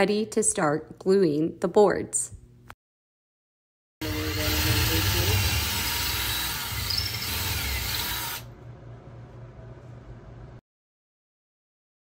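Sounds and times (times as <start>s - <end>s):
cordless drill boring into wood: 4.0s - 8.5s.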